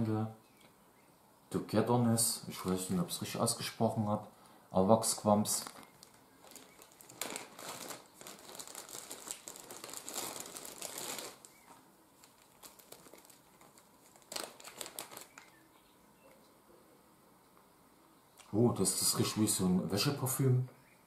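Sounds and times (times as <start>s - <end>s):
plastic packaging crinkling: 5.4s - 15.6s.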